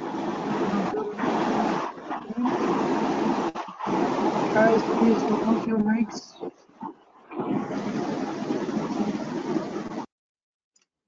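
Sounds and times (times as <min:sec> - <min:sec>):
faint pitched tones: 0:00.0 - 0:10.1
loud background noise through microphone: 0:00.0 - 0:10.1.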